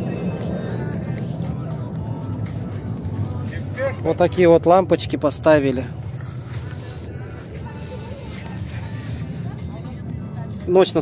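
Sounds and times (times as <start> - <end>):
low outdoor rumble: 0.0 - 11.0
faint distant voices: 3.2 - 11.0.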